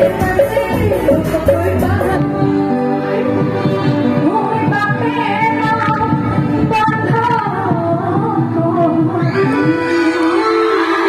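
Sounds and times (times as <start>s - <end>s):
backing music with steady beat: 0.0s - 11.0s
woman singing: 0.0s - 11.0s.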